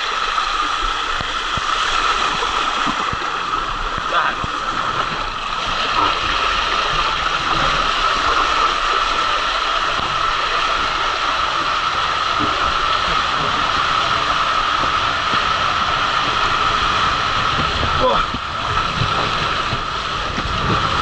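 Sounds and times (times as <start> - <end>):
rider sliding down water slide: 0.0 - 21.0
water rushing in slide tube: 0.0 - 21.0.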